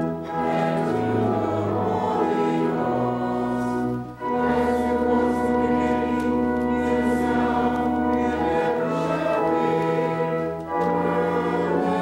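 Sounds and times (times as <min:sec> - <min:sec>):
choir singing a held chord: 0:00.0 - 0:12.0.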